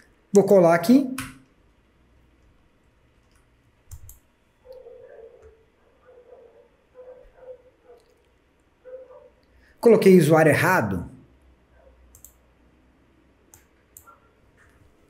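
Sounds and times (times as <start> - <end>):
faint low hum: 0.0 - 15.0
computer mouse click: 3.2 - 4.8, 12.1 - 12.4, 13.5 - 14.8.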